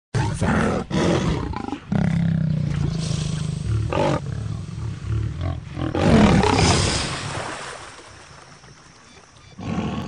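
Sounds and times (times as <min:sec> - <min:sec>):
lion growling low: 0:00.2 - 0:06.7
lion snarling: 0:00.2 - 0:06.8.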